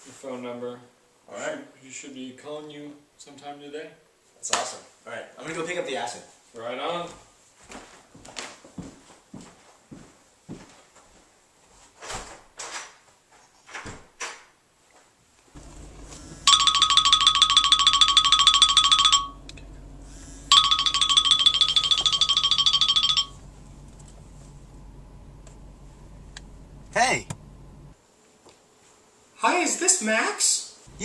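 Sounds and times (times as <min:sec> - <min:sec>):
phone ringing trilling tone: 0:15.6 - 0:23.7
low car cabin hum: 0:15.6 - 0:28.0.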